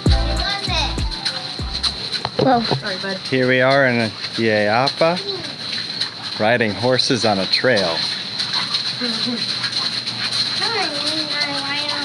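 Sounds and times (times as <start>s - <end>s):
steady high whine: 0.0s - 3.0s.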